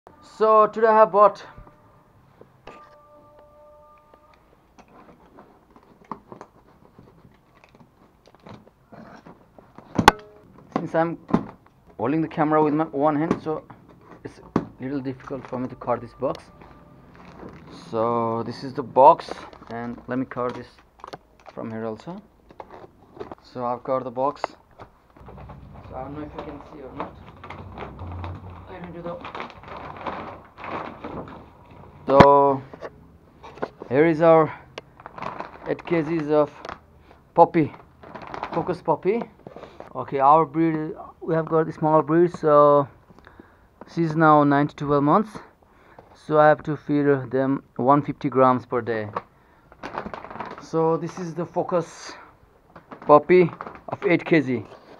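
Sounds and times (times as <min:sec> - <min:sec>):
plastic bag rustling: 0:13.9 - 0:18.0, 0:24.8 - 0:40.0, 0:49.6 - 0:54.9.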